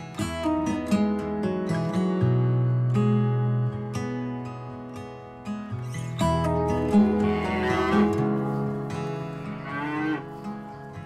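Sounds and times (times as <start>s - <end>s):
acoustic guitar music: 0.0s - 11.0s
cow mooing: 6.8s - 8.6s, 9.2s - 10.6s.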